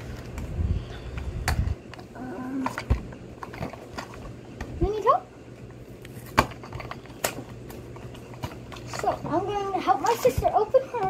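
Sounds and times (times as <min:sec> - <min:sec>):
child's voice: 0:08.9 - 0:11.0.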